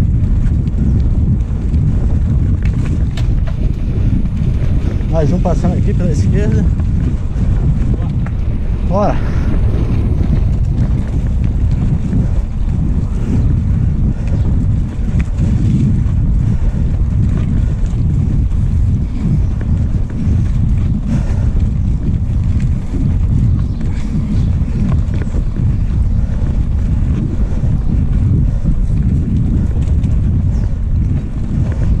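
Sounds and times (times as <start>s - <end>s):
bike jolting over cobblestones: 0.0s - 32.0s
wind buffeting microphone: 0.0s - 32.0s.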